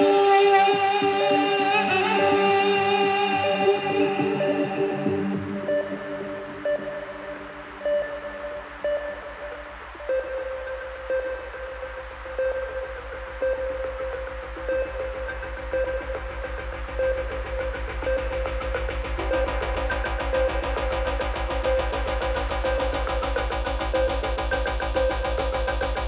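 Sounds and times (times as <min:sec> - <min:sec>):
electronic synthesizer music: 0:00.0 - 0:26.0.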